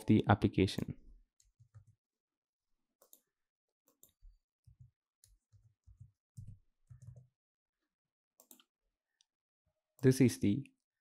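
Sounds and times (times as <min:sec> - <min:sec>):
faint keyboard keystrokes: 0:03.9 - 0:07.3.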